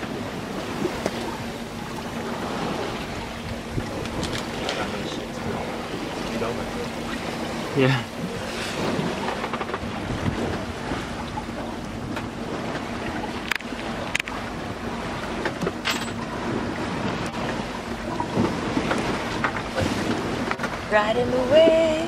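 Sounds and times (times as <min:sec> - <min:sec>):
water rushing along a hull: 0:00.0 - 0:22.0
wind buffeting microphone: 0:00.0 - 0:22.0.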